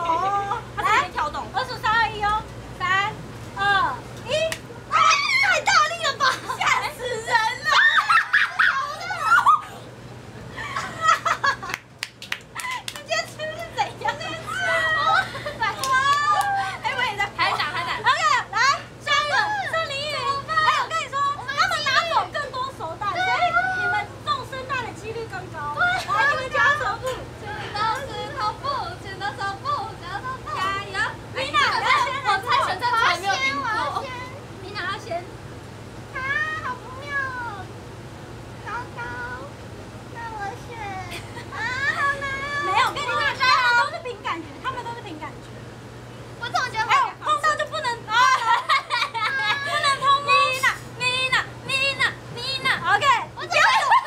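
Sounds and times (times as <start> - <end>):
young women chattering: 0.0 - 11.6, 12.6 - 35.4, 40.1 - 45.6, 46.3 - 54.0
women talking and laughing: 0.0 - 37.8, 38.6 - 54.0
steady low hum: 0.0 - 54.0.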